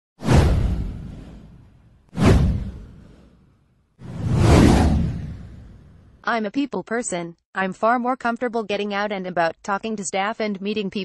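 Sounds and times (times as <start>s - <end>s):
whoosh sound effects: 0.2s - 6.1s.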